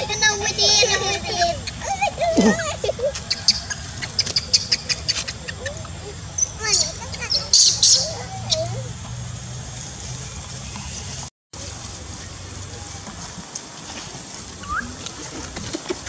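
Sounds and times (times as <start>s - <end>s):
monkey calls: 0.0s - 9.0s
faint voices: 0.0s - 16.0s
steady low hum: 0.0s - 16.0s
rising chirp: 3.1s - 9.0s.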